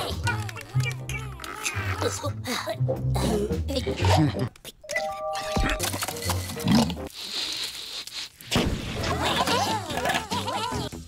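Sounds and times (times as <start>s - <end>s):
cartoon soundtrack music: 0.0s - 7.1s, 9.0s - 11.0s.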